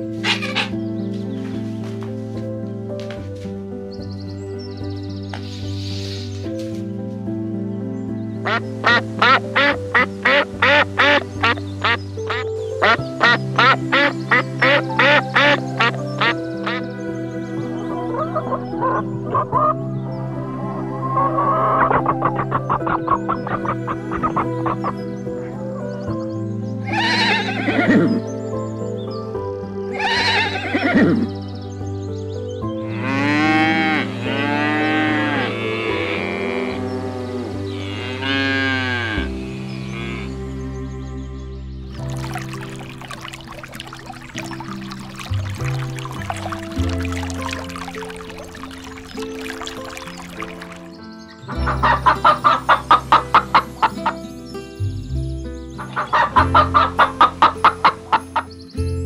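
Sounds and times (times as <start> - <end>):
soft background music: 0.0 - 59.0
chickens calling: 0.1 - 0.9, 8.4 - 17.0, 17.6 - 26.0, 26.8 - 28.3, 29.9 - 31.3, 42.1 - 54.2, 55.8 - 58.5
duck quacking: 0.2 - 0.8, 8.4 - 16.8
cattle mooing: 32.9 - 40.3.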